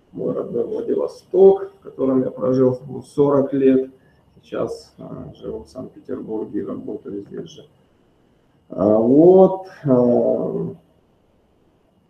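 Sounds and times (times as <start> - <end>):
man's drawn-out hesitation sound: 0.0 - 7.7, 8.6 - 10.8.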